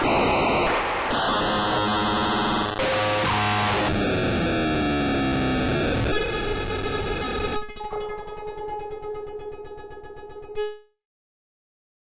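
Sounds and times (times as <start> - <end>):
harsh noisy synthesizer textures: 0.0 - 9.3.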